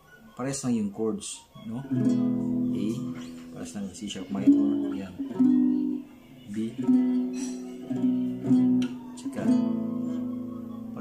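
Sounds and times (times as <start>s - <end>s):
acoustic guitar strumming: 1.6s - 11.0s.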